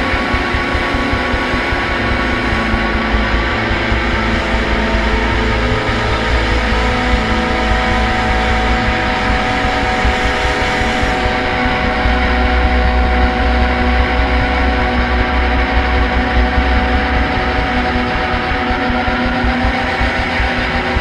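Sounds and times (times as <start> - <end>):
deep low rumble: 0.0 - 21.0
electric guitars droning: 0.0 - 21.0.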